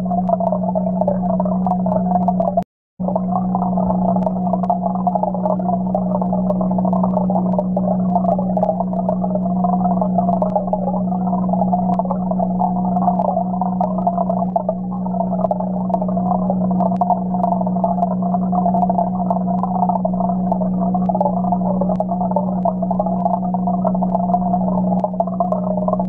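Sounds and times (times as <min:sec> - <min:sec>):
aeration bubbles bubbling: 0:00.0 - 0:26.0
aquarium hum: 0:00.0 - 0:26.0.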